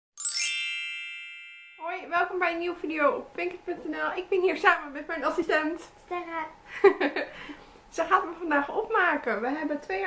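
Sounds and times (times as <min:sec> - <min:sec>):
bright high chime: 0:00.2 - 0:02.2.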